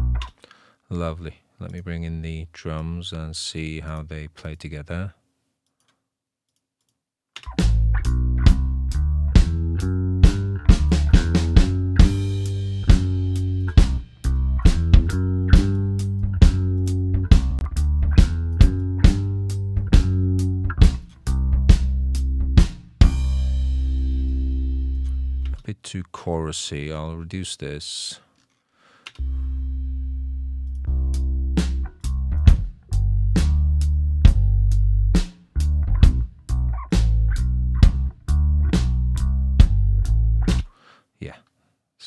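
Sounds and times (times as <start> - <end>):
bass guitar: 0.0 - 0.4, 7.4 - 25.7, 29.2 - 40.7
drum kit hits: 10.2 - 24.3.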